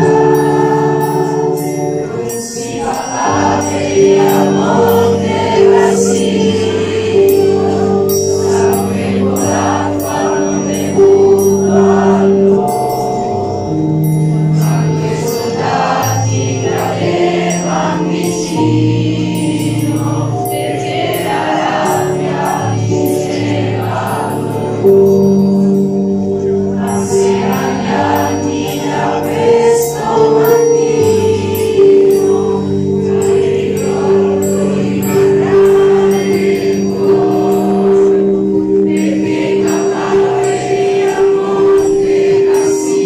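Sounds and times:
choir singing: 0.0 - 43.0.

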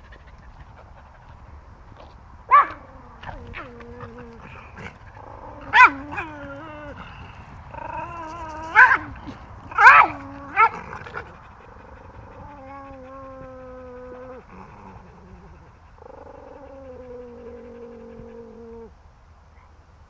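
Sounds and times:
dog yipping: 2.5 - 4.3, 5.6 - 7.0, 8.2 - 10.8
dog whining: 2.5 - 18.9.

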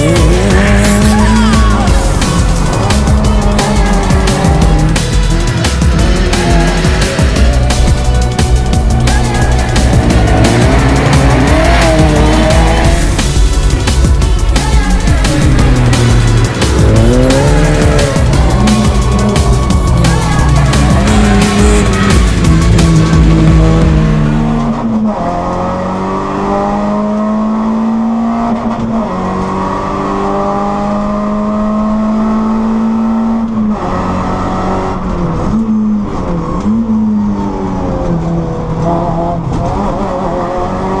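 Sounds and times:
rally car engine at high revs: 0.0 - 41.0.

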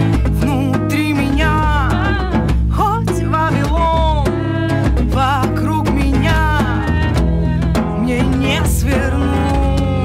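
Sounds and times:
hand drum beat: 0.0 - 10.0
strummed acoustic guitar: 0.0 - 10.0
woman singing with vibrato: 0.0 - 10.0.

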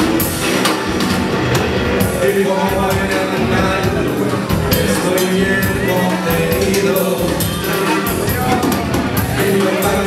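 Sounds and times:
drum kit hits: 0.0 - 10.0
guitar: 0.0 - 10.0
rock band playing loudly: 0.0 - 10.0.

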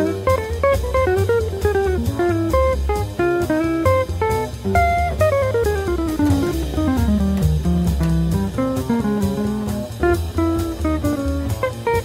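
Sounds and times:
bass guitar: 0.0 - 12.0
light drum kit: 0.0 - 12.0
plucked guitar melody: 0.0 - 12.0.

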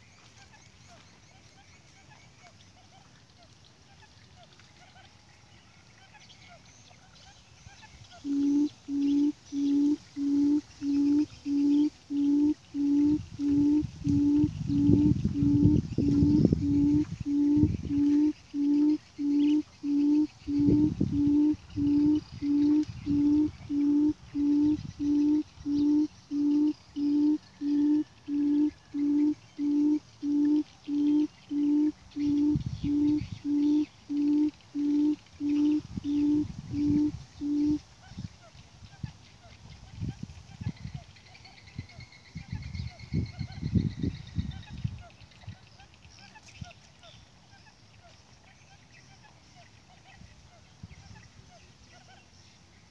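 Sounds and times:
low hooting bird call: 8.1 - 37.8.

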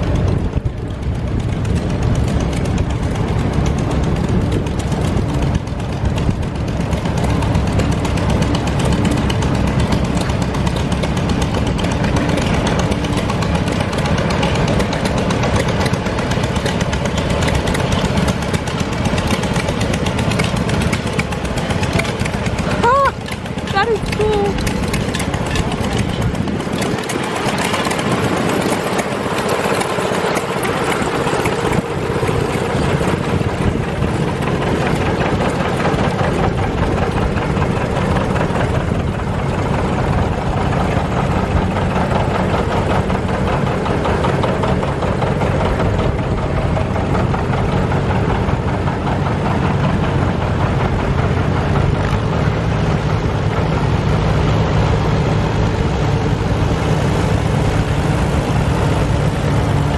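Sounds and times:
tractor engines running: 0.0 - 59.9.

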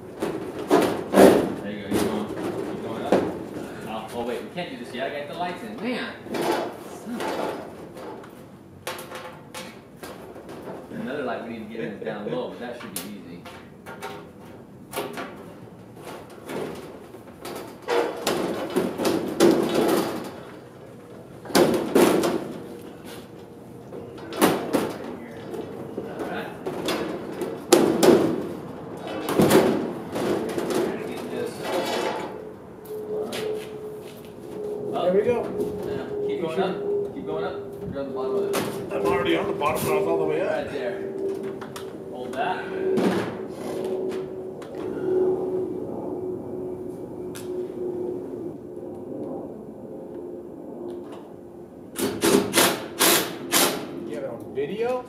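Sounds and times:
thin sheet metal knocks and rattles: 0.2 - 3.4, 16.1 - 20.5, 21.5 - 22.6, 26.6 - 32.3
indistinct voices: 34.6 - 45.6.

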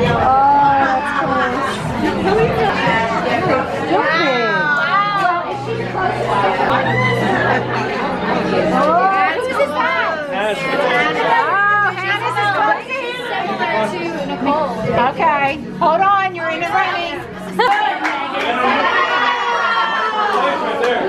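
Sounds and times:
background music: 0.0 - 21.0
people chattering and exclaiming: 0.0 - 21.0.

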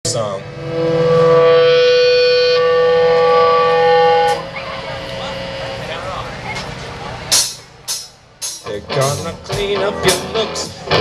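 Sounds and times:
buzzy amplified note: 0.0 - 11.0
sharp hits: 0.1 - 10.3
quiet voices: 4.2 - 8.0
rock song: 7.3 - 11.0.

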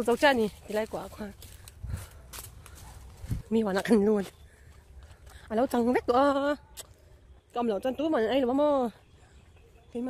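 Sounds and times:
footsteps in dry leaves: 0.0 - 5.4.

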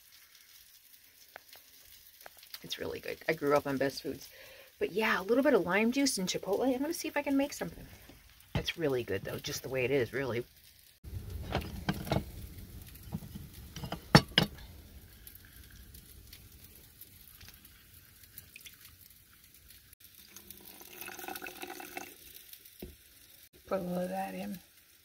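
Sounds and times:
juice dripping into bowl: 0.0 - 3.2, 14.6 - 22.9.

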